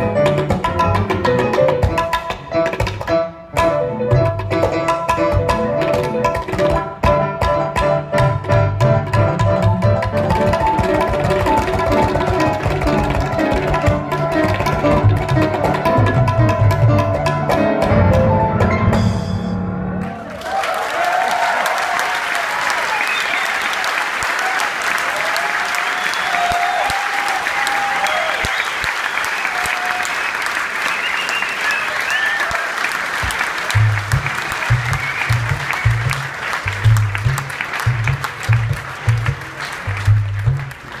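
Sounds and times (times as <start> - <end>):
audience applauding and cheering: 9.6 - 17.1, 19.9 - 41.0.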